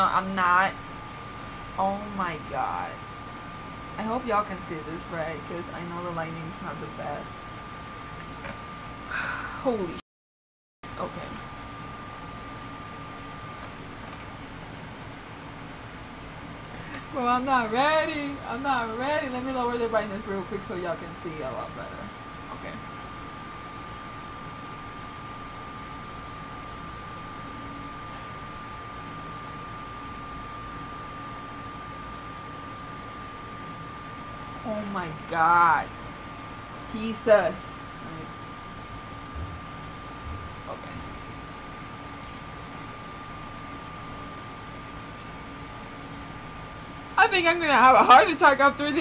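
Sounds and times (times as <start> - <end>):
air conditioner hissing: 0.0 - 10.0, 10.9 - 49.0
faint steady whine: 0.0 - 10.0, 10.8 - 49.0.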